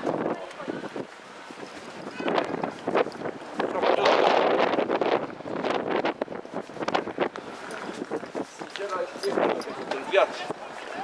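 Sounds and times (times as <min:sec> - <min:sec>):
people's voices in street: 0:00.0 - 0:11.0
wind buffeting microphone: 0:00.0 - 0:11.0.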